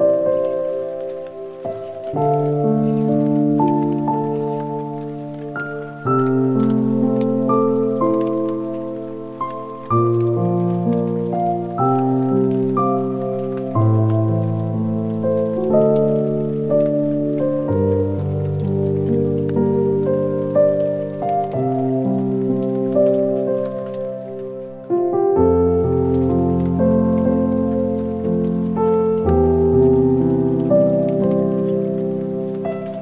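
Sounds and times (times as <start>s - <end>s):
faint clicks: 0.0s - 24.9s
calm music of sustained chords: 0.0s - 33.0s.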